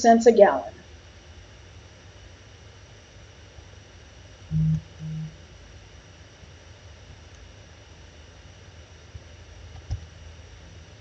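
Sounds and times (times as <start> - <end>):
faint hum: 0.0 - 11.0
woman humming mm-hmm: 4.5 - 5.4.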